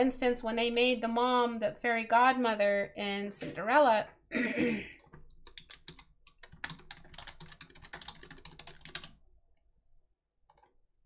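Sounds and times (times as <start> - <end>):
keyboard typing clicks: 5.0 - 9.2, 10.5 - 10.7.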